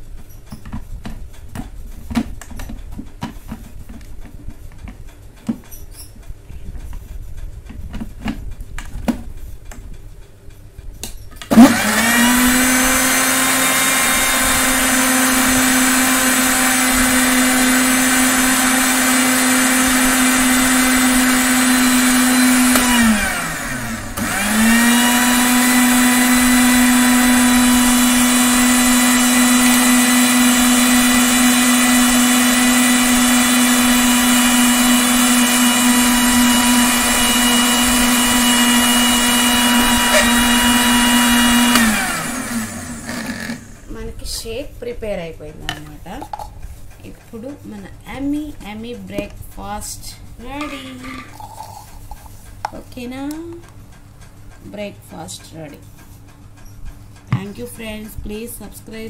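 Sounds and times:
mixer grinder motor running: 0:11.5 - 0:44.0
ice cubes rattling in jar: 0:51.0 - 0:52.3.

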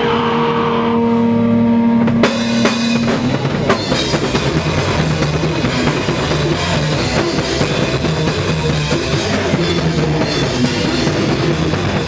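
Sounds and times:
distorted electric guitar note: 0:00.0 - 0:12.0.

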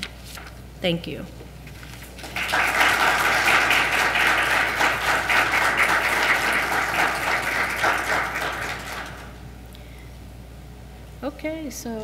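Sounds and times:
audience applauding: 0:02.2 - 0:09.4.

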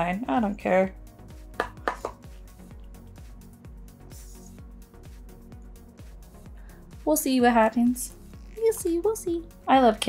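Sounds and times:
background music with beat: 0:00.9 - 0:10.0.

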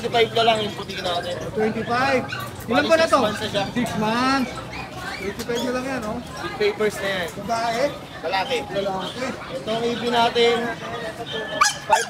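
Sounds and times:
puppy whimpering and yipping: 0:01.0 - 0:02.7, 0:04.4 - 0:05.9, 0:11.6 - 0:12.0.

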